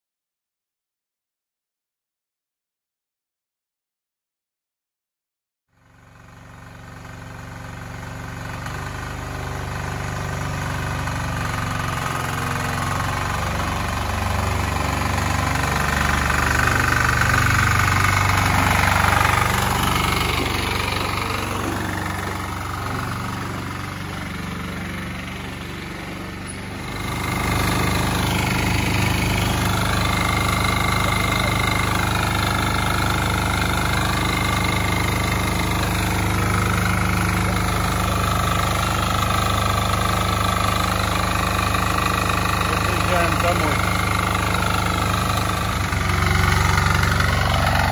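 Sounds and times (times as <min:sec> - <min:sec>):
diesel tractor engine running: 0:05.8 - 0:47.9.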